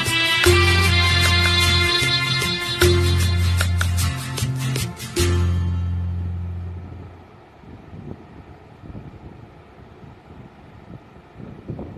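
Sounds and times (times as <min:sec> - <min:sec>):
karaoke backing track note: 0:00.0 - 0:06.9
low microphone rumble: 0:05.8 - 0:11.9.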